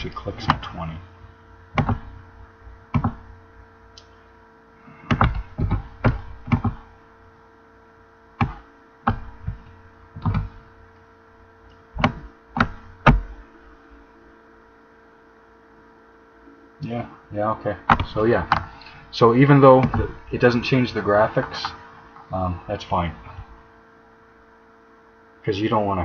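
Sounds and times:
steady electrical hum: 0.0 - 26.0
computer mouse and keyboard clicks: 1.8 - 2.1.

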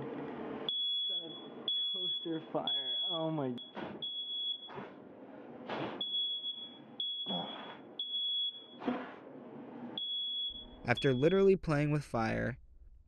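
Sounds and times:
smoke alarm beeping: 0.7 - 5.0, 6.0 - 8.8, 9.9 - 11.5.

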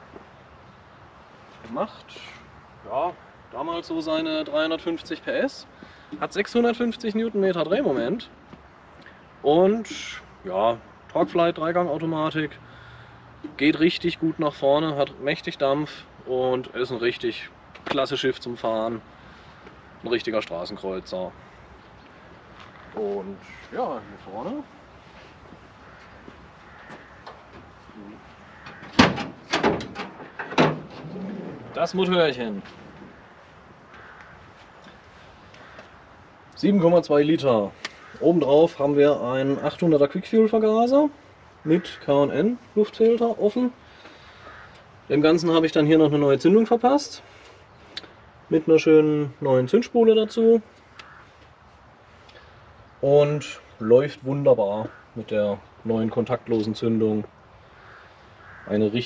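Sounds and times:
faint steady hiss: 0.0 - 59.0
car hood metallic clunk: 28.6 - 31.6.

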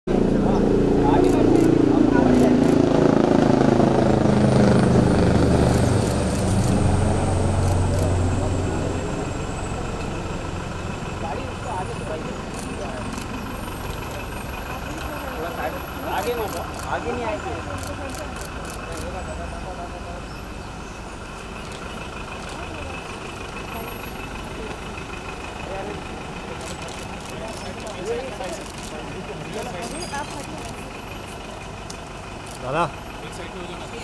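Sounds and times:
vehicle engine running: 0.1 - 34.0
crowd murmuring: 5.7 - 20.4.

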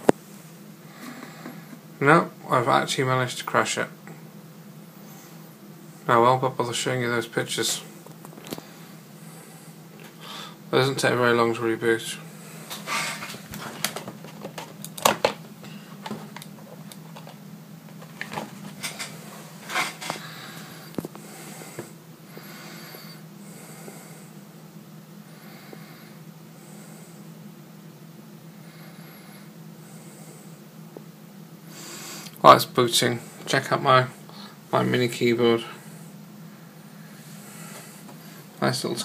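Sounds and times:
steady low hum: 0.0 - 39.0
cable handling clicks and rustles: 12.7 - 20.2.

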